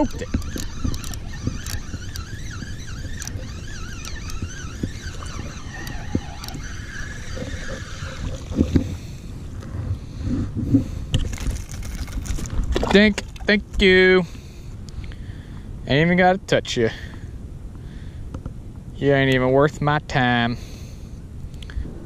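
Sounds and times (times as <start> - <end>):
small clicks: 0.0 - 6.7
fishing reel gears whirring: 0.0 - 9.6
wind rumble on microphone: 0.0 - 14.0, 21.2 - 22.0.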